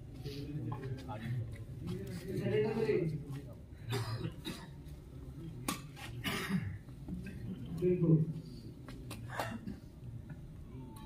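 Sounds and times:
person coughing: 0:03.9 - 0:04.8, 0:06.2 - 0:06.8, 0:09.3 - 0:09.9.

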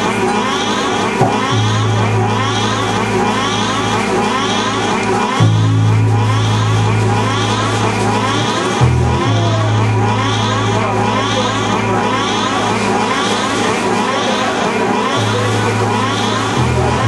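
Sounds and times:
low bass note: 0:00.0 - 0:14.0, 0:15.2 - 0:17.0.

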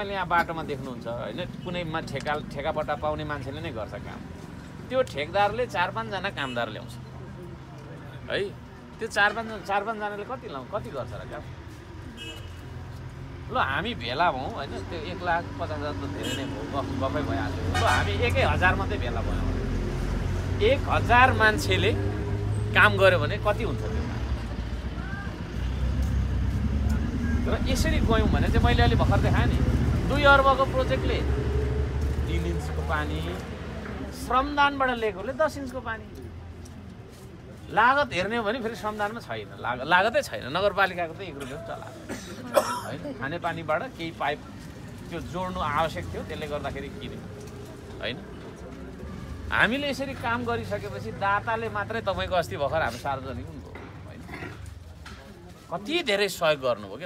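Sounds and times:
background chatter of people: 0:00.0 - 0:57.0
low street rumble: 0:00.0 - 0:57.0.

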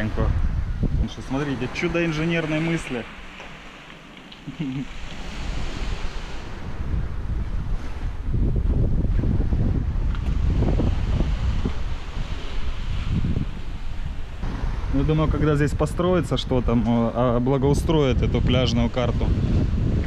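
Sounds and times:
surf on a pebble beach: 0:00.0 - 0:20.0
wind buffeting microphone: 0:00.0 - 0:20.0.

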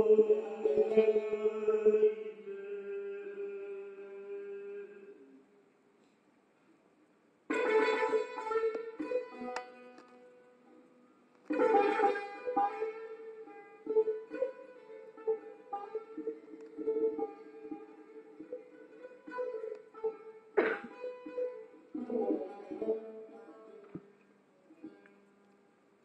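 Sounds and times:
plucked lute melody: 0:00.0 - 0:01.8, 0:07.5 - 0:25.4
loud strummed lute stroke: 0:07.5 - 0:10.2, 0:11.5 - 0:24.0.

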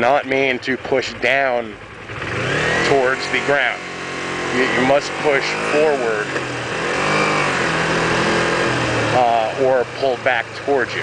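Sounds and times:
motorcycle engine running: 0:00.0 - 0:11.0
road noise: 0:00.0 - 0:11.0.

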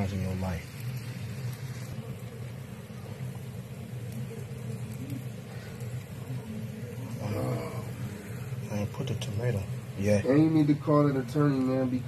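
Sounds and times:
constant low hum: 0:00.0 - 0:12.0
meat sizzling in oil: 0:00.0 - 0:12.0.

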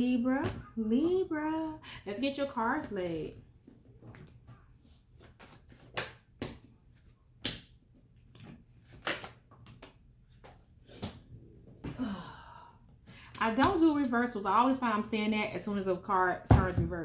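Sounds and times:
cards being shuffled: 0:04.0 - 0:07.7, 0:08.3 - 0:11.2
cards snapping: 0:08.9 - 0:10.0.

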